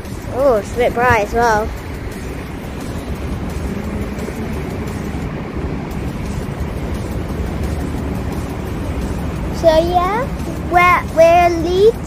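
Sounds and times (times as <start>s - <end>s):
city background rumble: 0.0s - 12.0s.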